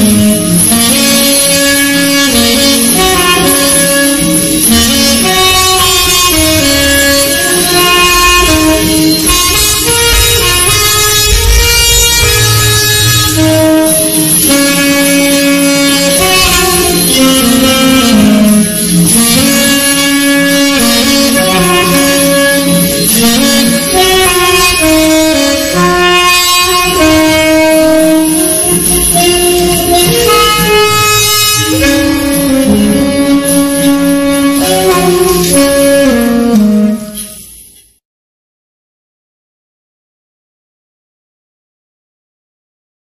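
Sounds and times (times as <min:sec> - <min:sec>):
alto saxophone slow melody: 0:00.0 - 0:37.6.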